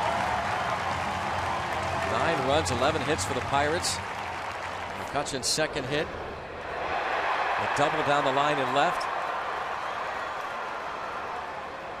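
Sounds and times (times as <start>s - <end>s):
crowd cheering: 0.0s - 5.4s, 6.6s - 12.0s.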